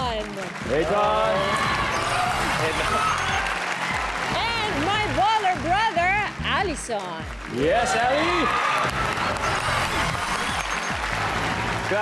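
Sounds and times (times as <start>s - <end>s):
audience applause: 0.0s - 12.0s
background music with bass line: 0.6s - 12.0s.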